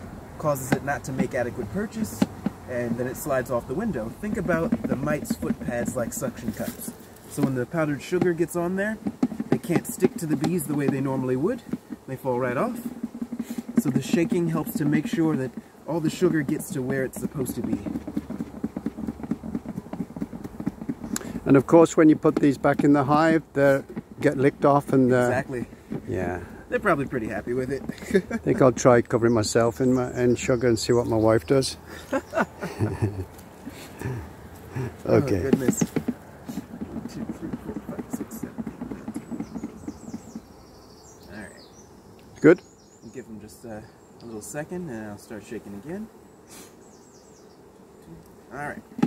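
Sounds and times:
bees buzzing: 0.0 - 49.0
plastic tub rattling when shaken: 16.6 - 21.2.

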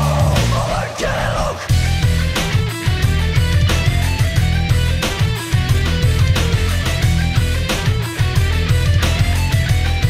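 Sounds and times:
heavy rock remix: 0.0 - 10.0.

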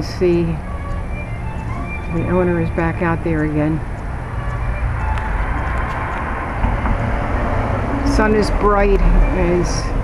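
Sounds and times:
car driving past: 3.8 - 10.0.

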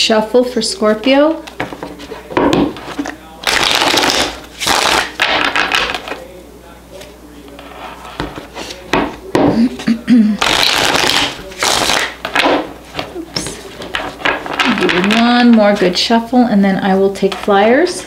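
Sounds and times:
cards being shuffled: 1.4 - 6.2, 10.4 - 15.8.

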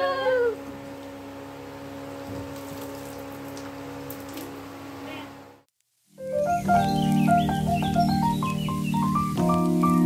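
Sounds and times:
women ululating: 0.0 - 0.6.

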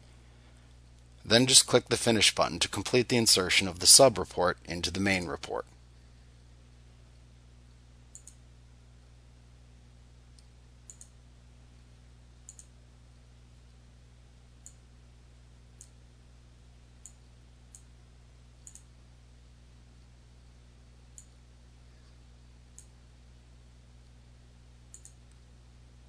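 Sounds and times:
low electrical hum: 0.0 - 26.0
computer mouse clicks: 8.1 - 8.4, 10.4 - 11.2, 12.5 - 12.7, 18.6 - 18.9, 22.7 - 22.9, 24.9 - 25.4.

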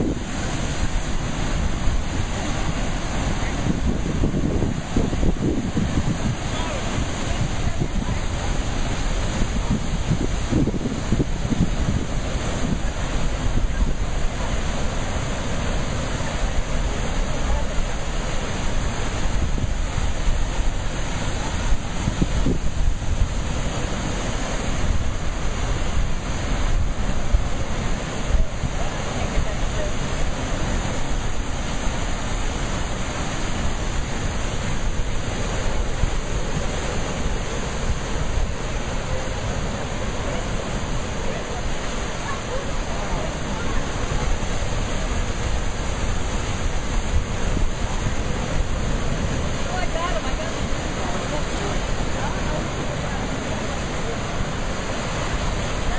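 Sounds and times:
ocean surf breaking on rocks: 0.0 - 55.9
wind buffeting microphone: 0.0 - 55.9.

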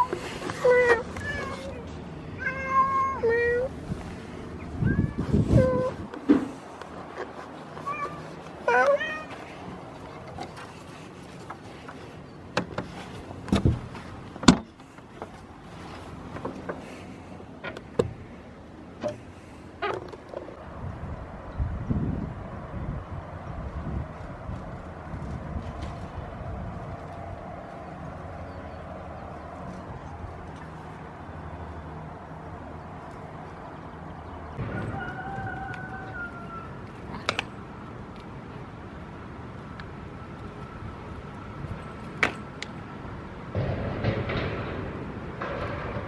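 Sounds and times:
cat meowing: 2.4 - 3.7, 7.9 - 9.3.

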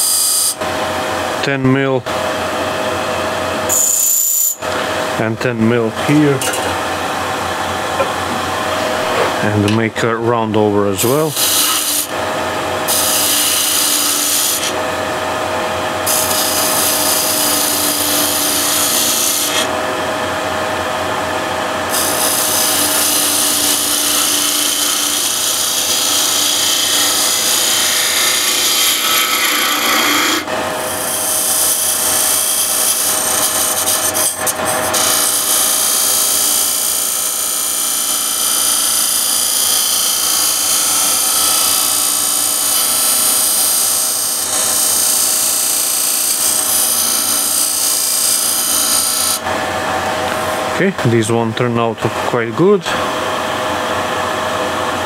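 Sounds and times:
chisel cutting spinning wood: 0.0 - 0.9, 8.0 - 51.4
lathe motor hum: 11.1 - 50.9.

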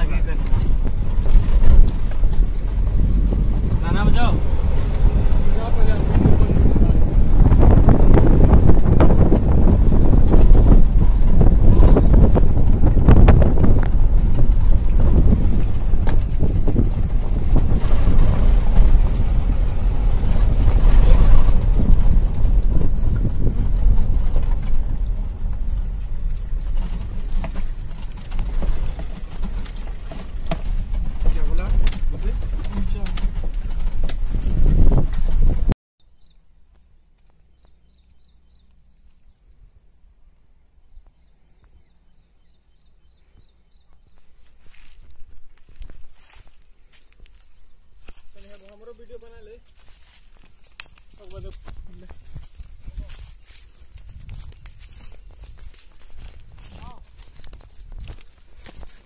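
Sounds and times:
knocks and rattles: 0.0 - 35.8
wind rushing over microphone: 0.0 - 35.8, 43.1 - 59.0
moving car rumble: 0.0 - 59.0.

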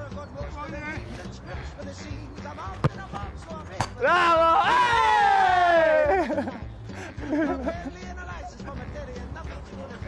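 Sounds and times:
background music: 0.0 - 10.0
football being struck: 2.6 - 4.0.

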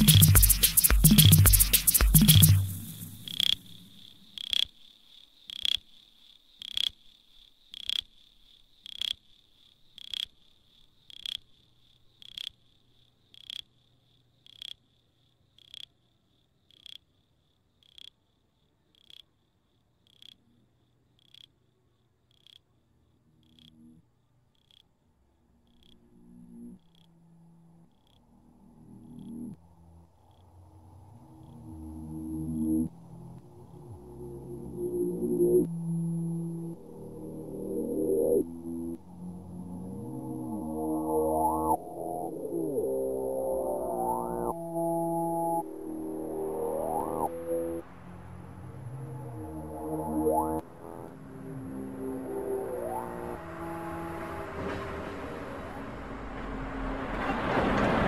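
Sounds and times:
low synth tones: 0.0 - 4.2, 26.0 - 56.1.

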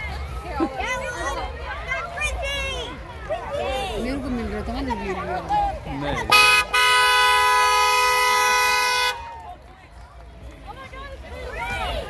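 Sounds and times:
two-tone car horn honking: 6.3 - 9.2.

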